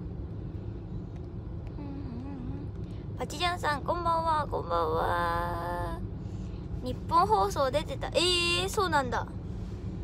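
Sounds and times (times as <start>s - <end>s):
car engine rumble from inside: 0.0s - 10.0s.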